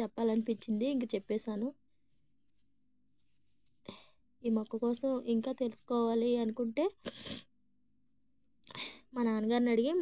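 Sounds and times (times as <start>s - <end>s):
person breathing: 3.8s - 4.3s.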